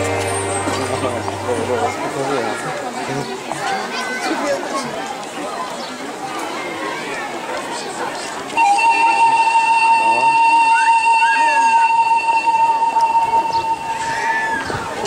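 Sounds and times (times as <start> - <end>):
children's voices murmuring: 0.0 - 15.0
loud steady high tone: 8.6 - 15.0.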